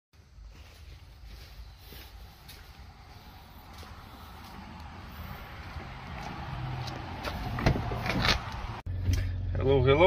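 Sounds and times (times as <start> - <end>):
footsteps on asphalt: 0.2 - 8.8
truck door opening: 6.2 - 8.8.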